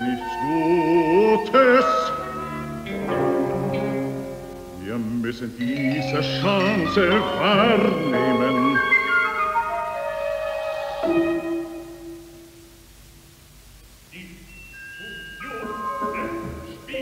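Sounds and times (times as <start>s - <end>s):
orchestra playing opera music: 0.0s - 12.4s, 14.8s - 17.0s.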